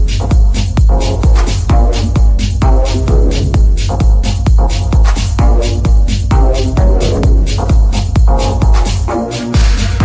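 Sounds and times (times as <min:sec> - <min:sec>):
minimal techno music: 0:00.0 - 0:10.0.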